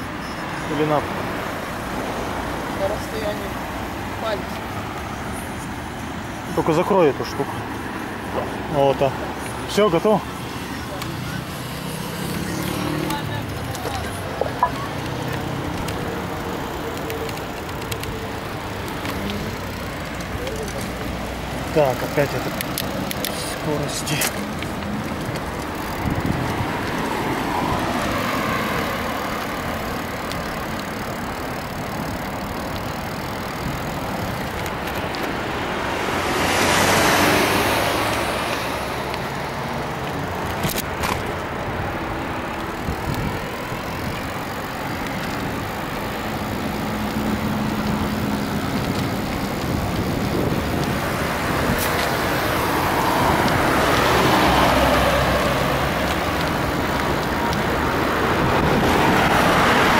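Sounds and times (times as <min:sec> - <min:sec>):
steady road noise: 0:00.0 - 0:59.9
vehicles passing close by: 0:00.0 - 0:59.9.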